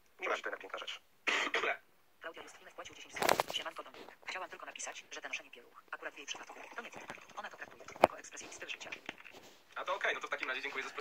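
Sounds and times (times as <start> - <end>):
man coughing: 1.3 - 1.8.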